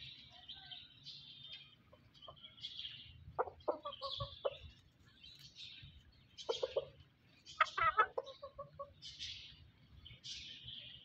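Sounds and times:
faint high-pitched chirping: 0:00.0 - 0:11.0
chickens clucking: 0:01.6 - 0:10.0
chicken squawk: 0:03.4 - 0:04.6, 0:07.6 - 0:09.0.

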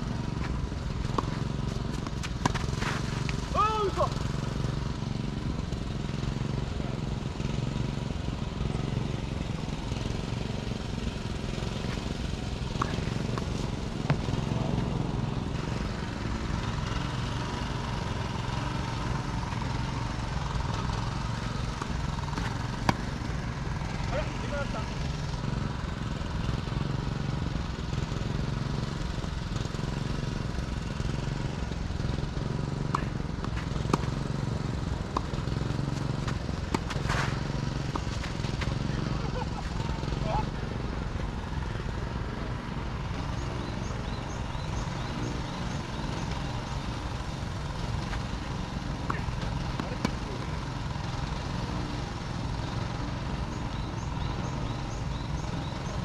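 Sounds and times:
tennis ball struck by rackets: 0:00.2 - 0:03.9, 0:10.2 - 0:25.8, 0:32.2 - 0:40.6, 0:45.0 - 0:56.0.

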